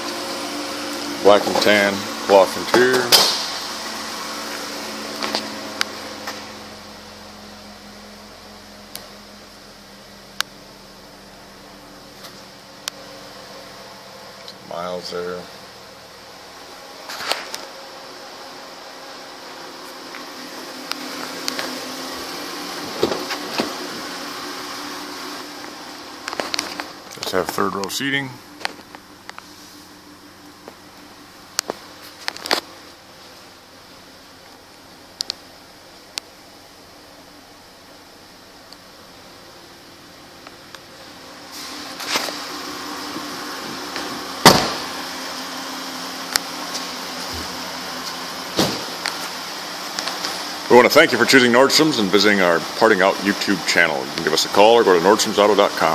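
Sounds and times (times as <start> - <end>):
steady hum: 0.0 - 55.9
car door shutting with a thud: 22.8 - 24.0, 44.4 - 45.0, 48.5 - 49.0
car door opening: 22.8 - 24.1, 43.6 - 45.0, 46.7 - 49.2.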